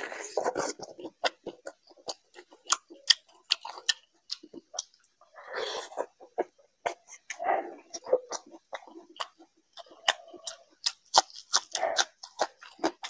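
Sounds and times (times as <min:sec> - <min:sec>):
wet chewing: 0:00.0 - 0:13.0.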